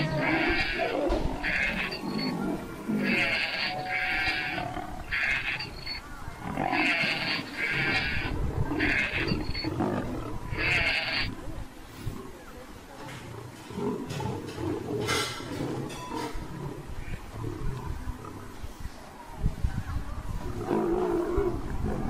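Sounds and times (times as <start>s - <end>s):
lion growling: 0.0s - 18.6s.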